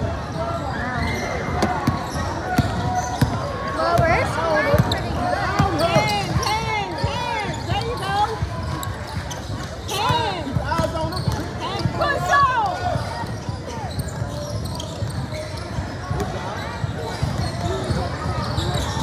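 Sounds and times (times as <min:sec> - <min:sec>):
sneakers squeaking: 0:00.0 - 0:19.0
voices echoing in hall: 0:00.0 - 0:19.0.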